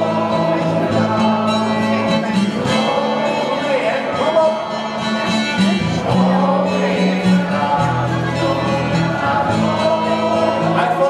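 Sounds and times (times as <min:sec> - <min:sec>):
acoustic guitar: 0:00.0 - 0:11.0
man singing into a microphone: 0:00.0 - 0:11.0
voices singing along: 0:00.0 - 0:11.0.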